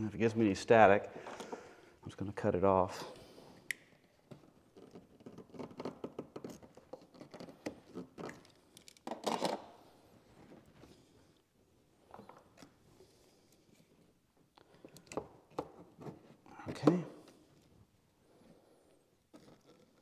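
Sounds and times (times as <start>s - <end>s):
rubber hoses clicking and scraping: 3.7s - 20.0s.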